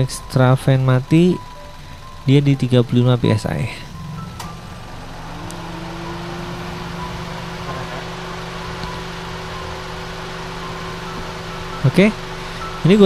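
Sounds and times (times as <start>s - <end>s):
air conditioning compressor hum: 0.0s - 13.0s
car engine idling: 0.0s - 13.0s.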